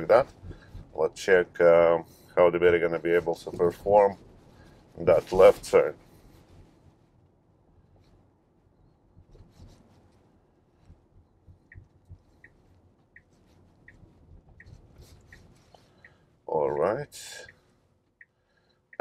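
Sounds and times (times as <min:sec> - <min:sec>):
low road rumble: 0:00.0 - 0:19.0
turn signal ticking: 0:10.8 - 0:19.0.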